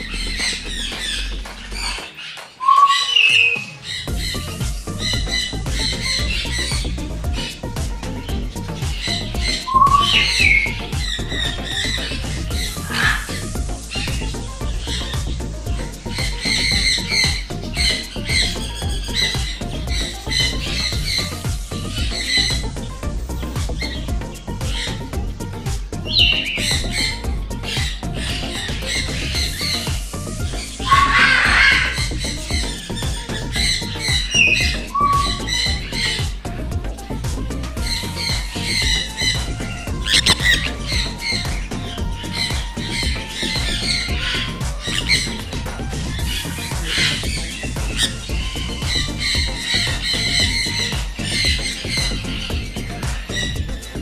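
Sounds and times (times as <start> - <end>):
background music: 0.0 - 54.0
parrots squawking: 0.0 - 54.0.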